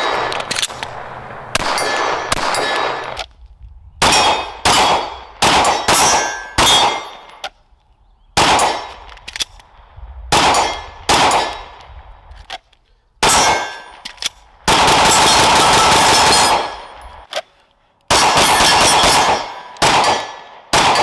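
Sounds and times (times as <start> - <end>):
pistol shots: 0.0 - 3.2, 4.0 - 7.4, 8.4 - 9.1, 10.3 - 11.8, 13.2 - 17.0, 18.1 - 21.0.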